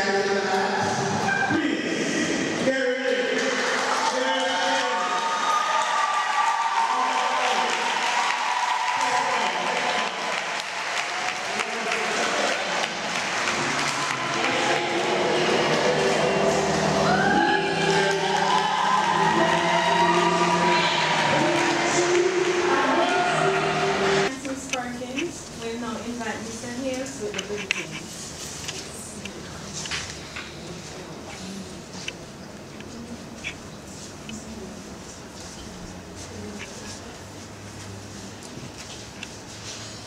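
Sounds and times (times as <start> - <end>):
audience applauding: 3.0 - 24.3.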